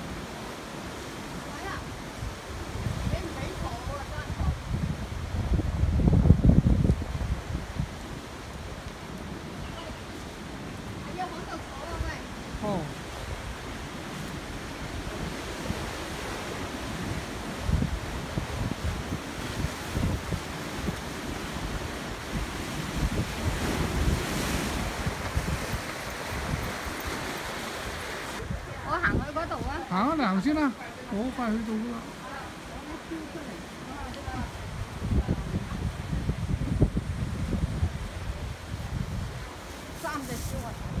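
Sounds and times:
ocean surf: 0.0 - 41.0
wind buffeting microphone: 0.0 - 41.0.

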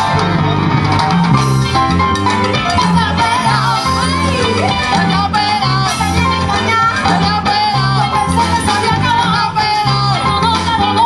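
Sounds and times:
band playing latin dance music: 0.0 - 11.0.

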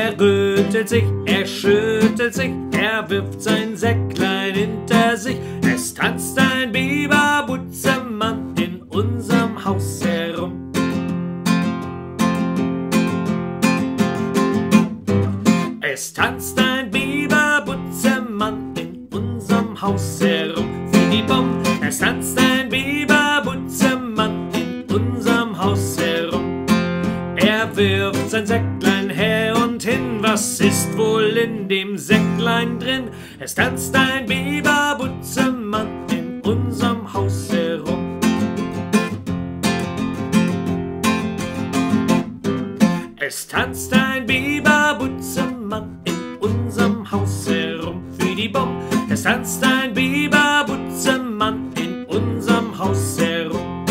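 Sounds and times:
man singing: 0.0 - 10.7, 15.8 - 38.4, 43.1 - 53.9
classical guitar strummed: 0.0 - 53.9.

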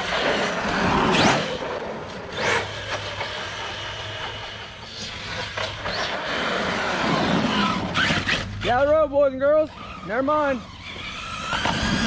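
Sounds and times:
rc truck motor whine: 0.0 - 12.0
tyre noise on asphalt: 0.0 - 12.0.

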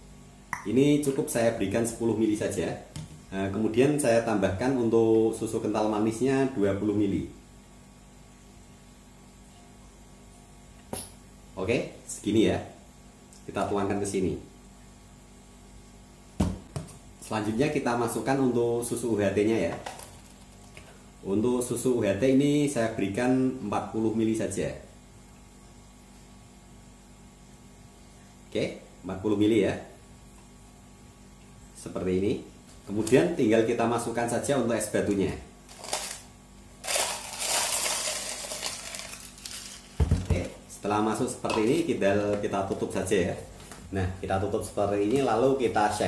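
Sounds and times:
ice cubes clattering into plastic shaker: 35.7 - 40.1.

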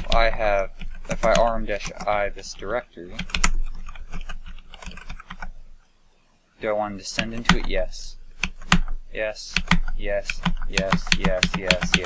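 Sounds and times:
computer keyboard keys clicking: 0.0 - 5.5, 7.1 - 8.9, 9.5 - 12.0.

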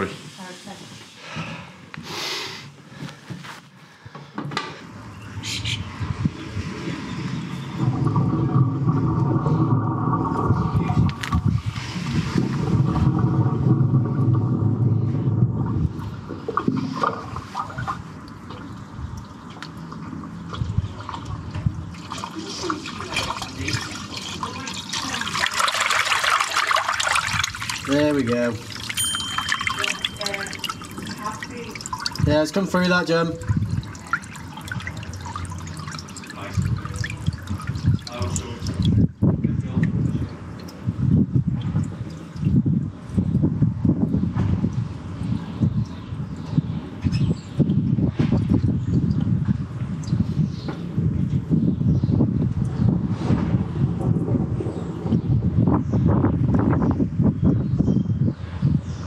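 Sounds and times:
drain water rushing into manhole: 6.0 - 43.9.

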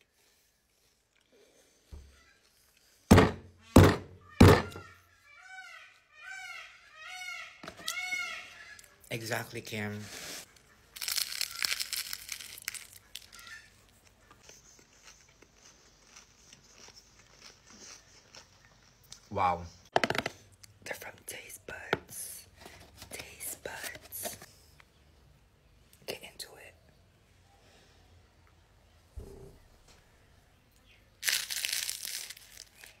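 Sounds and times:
crunchy bite and chewing: 10.5 - 19.2, 31.2 - 33.0.

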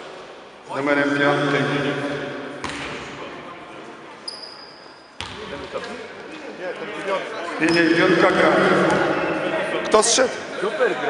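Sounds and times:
basketball bouncing on gym floor: 2.6 - 2.9.

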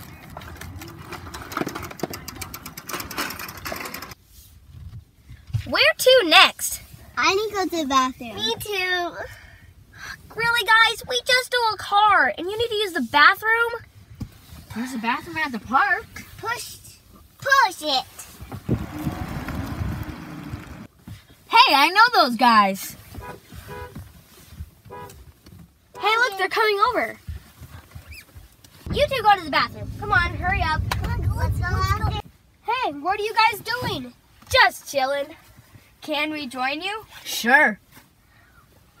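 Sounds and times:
bicycle rattling and clicking: 0.0 - 4.2
vehicle engine and tyres rumbling: 0.0 - 5.8, 12.6 - 21.5, 22.8 - 32.6
wind rumble on microphone: 18.4 - 20.9, 28.8 - 32.2.

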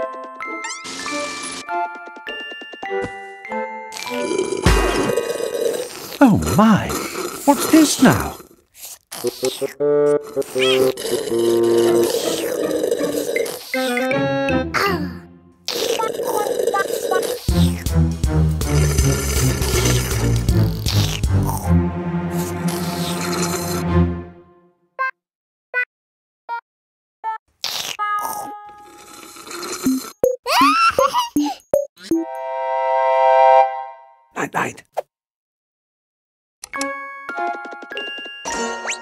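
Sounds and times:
drink slurped through a straw: 4.0 - 14.1, 15.7 - 17.8, 18.6 - 21.7, 22.3 - 23.8, 27.6 - 30.2.

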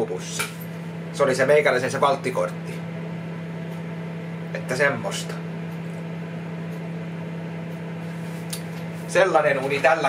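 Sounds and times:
kitchen appliance humming: 0.0 - 10.0.

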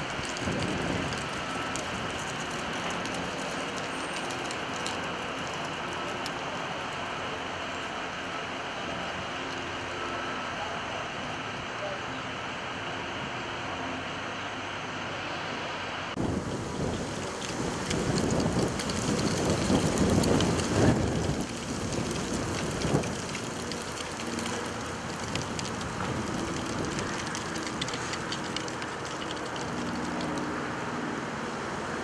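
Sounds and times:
street rushing rumble: 0.0 - 32.0.

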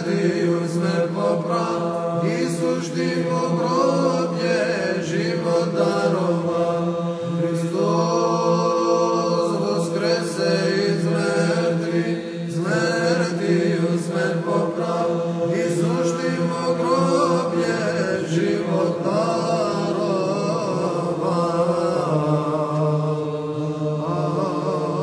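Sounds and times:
man chanting ornamented melody: 0.0 - 25.0.

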